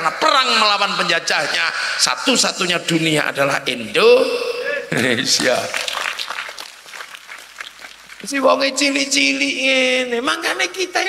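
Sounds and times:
audience applauding: 0:05.4 - 0:08.4.

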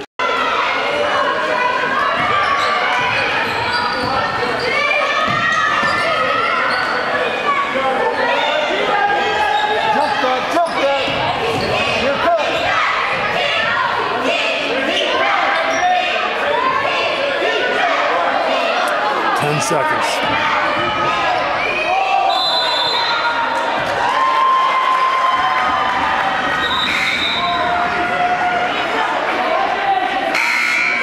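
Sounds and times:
din of overlapping voices: 0:07.3 - 0:21.9.

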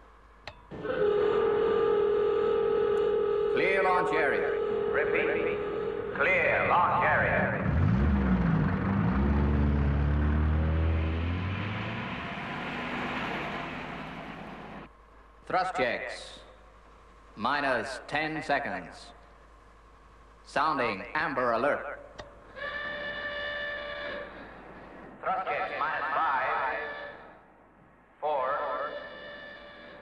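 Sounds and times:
steady alarm tone over loudspeakers: 0:00.7 - 0:09.1, 0:22.6 - 0:27.4, 0:28.2 - 0:30.0
vehicle engines driving past: 0:06.9 - 0:14.9.

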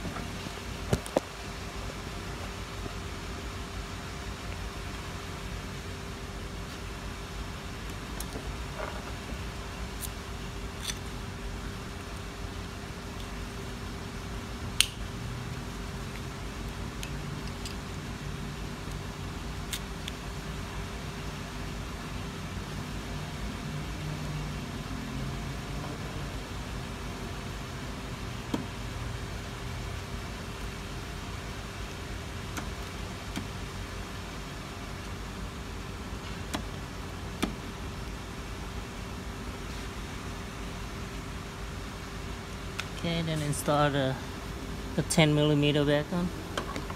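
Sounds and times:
steady low hum: 0:00.0 - 0:46.9.

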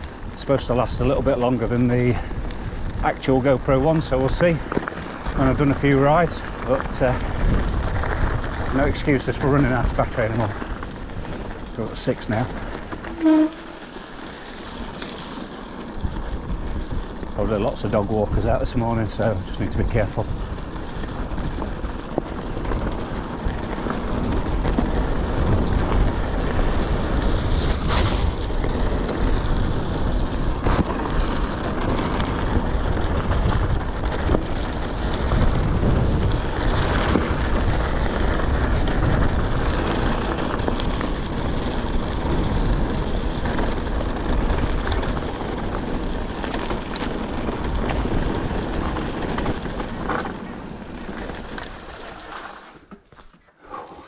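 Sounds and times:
wind rumble on microphone: 0:00.0 - 0:52.4
bike rattling over bumps: 0:00.0 - 0:53.6
tyres crunching on gravel: 0:00.0 - 0:53.6.

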